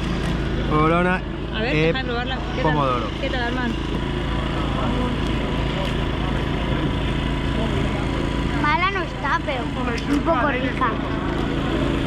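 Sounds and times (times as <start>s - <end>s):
low city hum: 0.0s - 12.0s.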